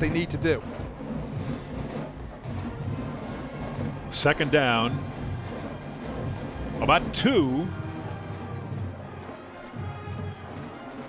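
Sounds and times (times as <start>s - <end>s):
band music with low drumming: 0.0s - 11.0s.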